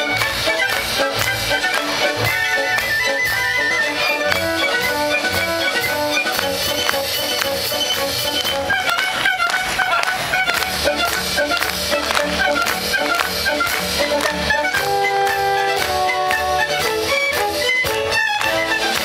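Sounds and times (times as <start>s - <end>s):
pulsing bass line: 0.0s - 19.0s
solo violin: 0.0s - 19.0s
string accompaniment: 0.0s - 19.0s.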